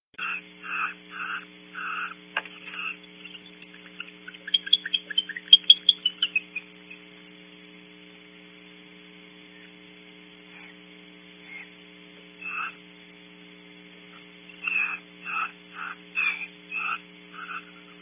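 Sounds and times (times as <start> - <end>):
owls chirping calls: 0.2 - 7.0, 10.5 - 10.8, 11.4 - 11.7, 12.4 - 12.8, 14.1 - 18.0
electrical mains hum: 0.2 - 18.0.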